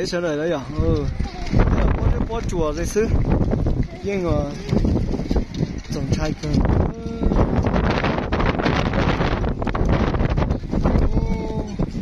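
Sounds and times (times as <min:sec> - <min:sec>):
wind buffeting a microphone: 0:00.0 - 0:12.0.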